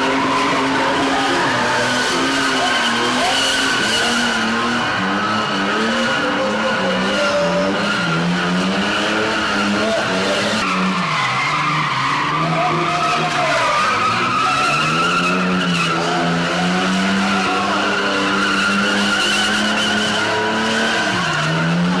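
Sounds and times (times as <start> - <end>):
car engine at high revs: 0.0 - 22.0
tyres squealing on concrete: 0.0 - 22.0.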